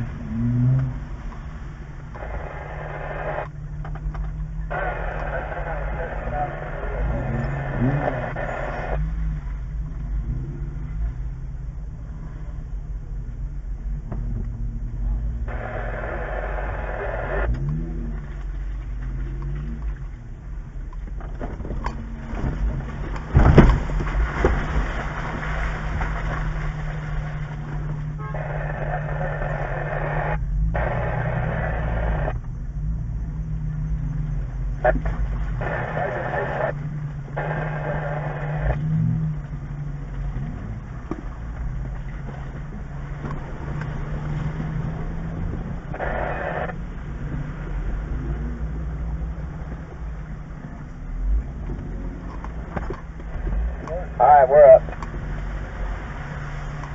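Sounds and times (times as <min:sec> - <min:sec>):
vehicle engine running: 0:00.0 - 0:56.9
muffled voices: 0:02.2 - 0:03.5, 0:04.6 - 0:09.0, 0:15.0 - 0:17.5, 0:28.3 - 0:32.4, 0:34.8 - 0:36.8, 0:37.4 - 0:38.8, 0:45.9 - 0:46.8, 0:53.6 - 0:54.9.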